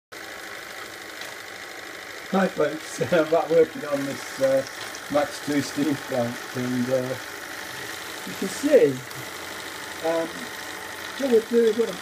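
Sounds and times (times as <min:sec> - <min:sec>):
small steam engine running: 0:00.1 - 0:12.0
steam hissing: 0:00.4 - 0:12.0.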